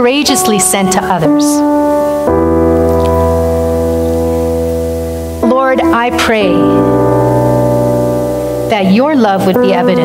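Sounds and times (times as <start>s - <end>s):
sustained keyboard chord: 0.0s - 10.0s.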